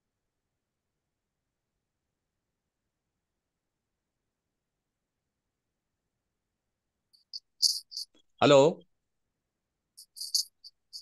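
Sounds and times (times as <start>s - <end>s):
high-pitched chirps: 7.2s - 8.2s, 10.0s - 11.0s.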